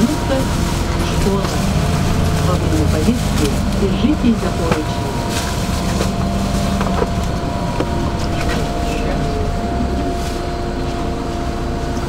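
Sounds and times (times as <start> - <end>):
bus engine rumble: 0.0 - 12.0
thin steady whine: 0.0 - 12.0.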